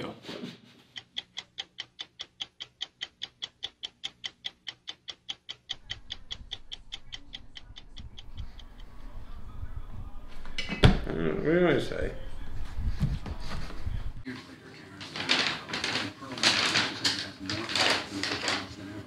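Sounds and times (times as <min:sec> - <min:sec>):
stopwatch ticking: 0:00.9 - 0:09.4
low rumble of room noise: 0:05.8 - 0:10.6.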